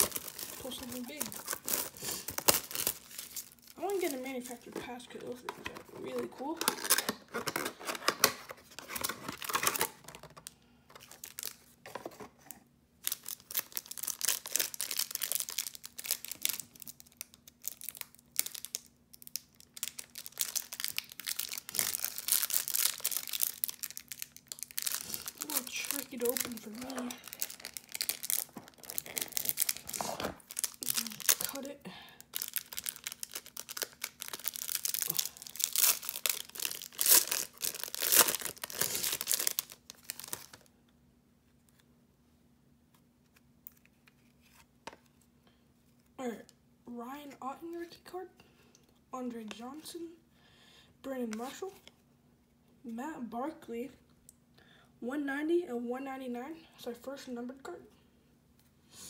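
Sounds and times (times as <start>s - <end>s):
plastic wrapping crinkling: 0.0s - 40.7s.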